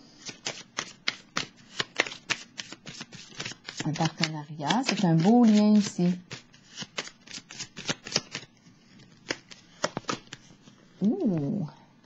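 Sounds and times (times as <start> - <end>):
cards being shuffled: 0.2 - 10.8.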